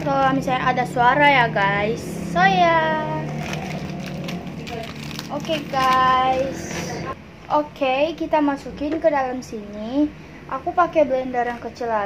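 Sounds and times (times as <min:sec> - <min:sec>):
plastic wrapper crinkling: 0:03.2 - 0:06.9.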